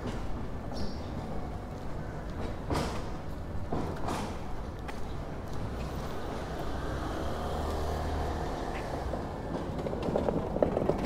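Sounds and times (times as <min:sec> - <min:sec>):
street rumble: 0:00.0 - 0:11.0
trolley wheels rattling on pavement: 0:00.0 - 0:11.0.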